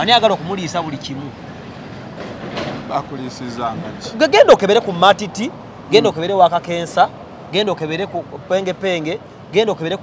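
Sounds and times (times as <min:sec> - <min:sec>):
man talking: 0:02.9 - 0:10.0.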